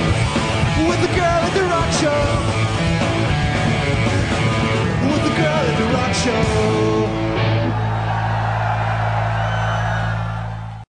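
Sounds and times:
crowd cheering and whooping: 0:07.4 - 0:10.9.

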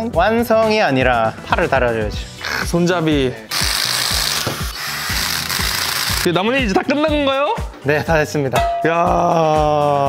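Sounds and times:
background music with beat: 0:00.0 - 0:10.0
power driver whirring: 0:03.5 - 0:06.3.

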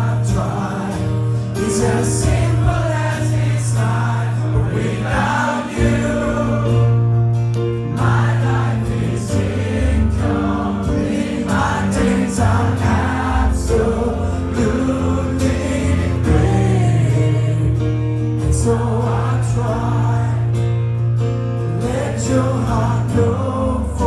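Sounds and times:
man singing lead vocal: 0:00.0 - 0:07.1, 0:08.0 - 0:20.8, 0:21.6 - 0:24.0
voices singing along: 0:00.0 - 0:07.1, 0:07.7 - 0:20.8, 0:21.7 - 0:24.0
bass line: 0:00.0 - 0:24.0
keyboard: 0:00.0 - 0:24.0
strummed acoustic guitar: 0:00.0 - 0:24.0.

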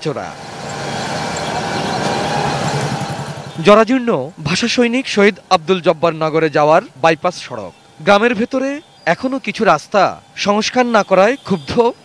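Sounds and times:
road noise: 0:00.0 - 0:12.0
vehicle engines humming: 0:00.0 - 0:12.0.

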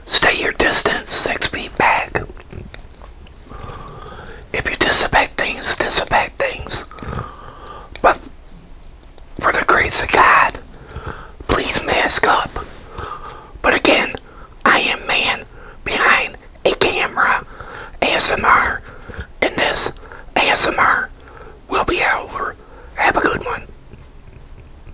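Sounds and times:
man whispering: 0:00.1 - 0:02.7, 0:03.5 - 0:08.3, 0:09.4 - 0:23.8.

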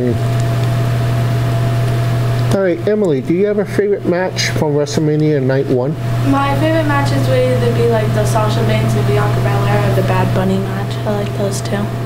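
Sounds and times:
people talking: 0:00.0 - 0:00.2, 0:02.5 - 0:12.0
low hum with hiss: 0:00.0 - 0:12.0.

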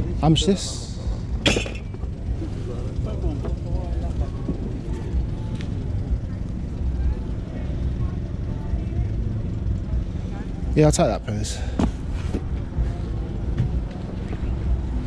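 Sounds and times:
faint voices talking: 0:00.0 - 0:15.0
steady low rumble: 0:00.0 - 0:15.0.

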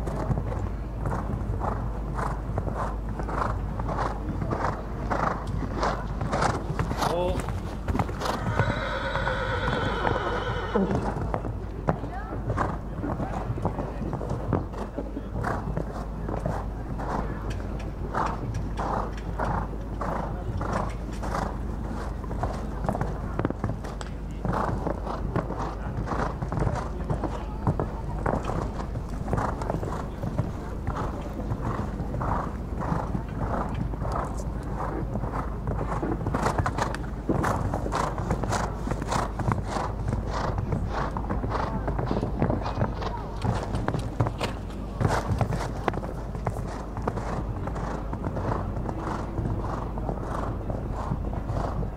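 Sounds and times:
horse hooves cantering on sand: 0:00.0 - 0:51.9
low outdoor rumble: 0:00.0 - 0:51.9.

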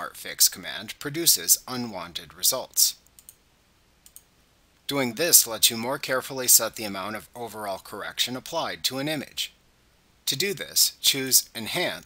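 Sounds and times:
man speaking: 0:00.0 - 0:03.1, 0:04.9 - 0:09.6, 0:10.2 - 0:12.0.

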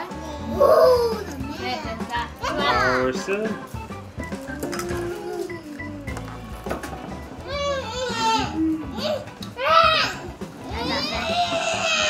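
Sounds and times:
background music: 0:00.0 - 0:12.0
small child crying: 0:00.3 - 0:01.4, 0:04.4 - 0:06.1, 0:07.4 - 0:12.0
children's voices: 0:07.4 - 0:12.0.

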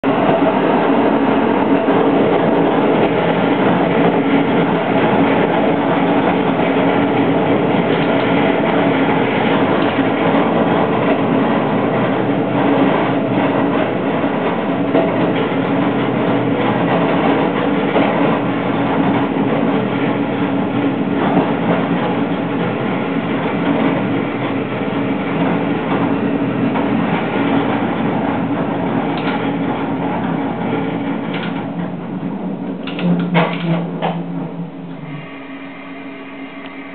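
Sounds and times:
railcar engine drone: 0:00.0 - 0:36.9
wheels knocking on rails: 0:00.1 - 0:35.0.

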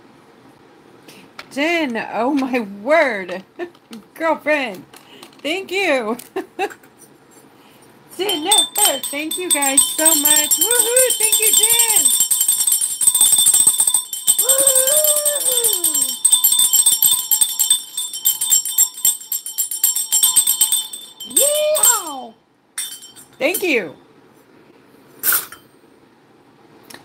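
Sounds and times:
jingle bells shaken: 0:08.2 - 0:24.0
woman whooping: 0:14.3 - 0:16.3, 0:21.3 - 0:22.4.

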